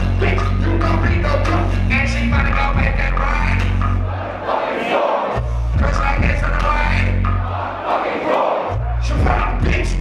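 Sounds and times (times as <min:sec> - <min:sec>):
hip-hop beat with heavy bass: 0:00.0 - 0:04.4, 0:05.3 - 0:07.8, 0:08.7 - 0:10.0
crowd shouting along: 0:04.0 - 0:05.5, 0:07.3 - 0:09.4.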